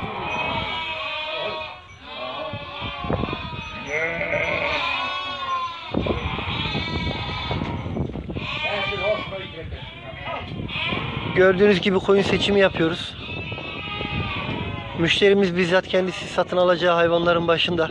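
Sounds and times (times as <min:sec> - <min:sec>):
sheep bleating: 0:00.0 - 0:11.8, 0:12.4 - 0:15.2.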